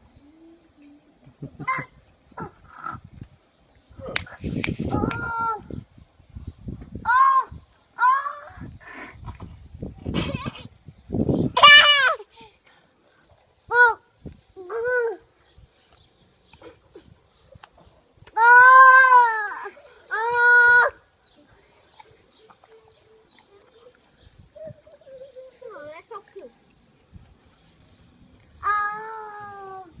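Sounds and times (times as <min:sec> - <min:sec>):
toddler's drawn-out aaah: 0:18.4 - 0:21.0.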